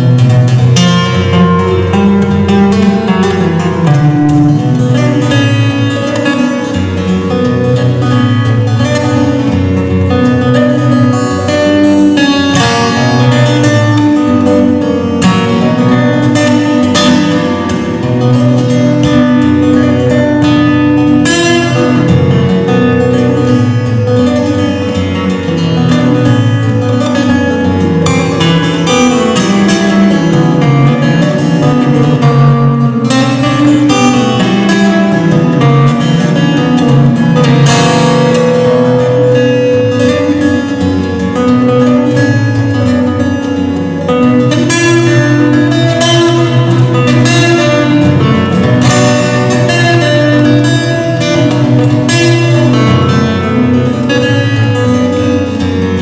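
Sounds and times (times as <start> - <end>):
acoustic guitar playing: 0.0 - 56.0.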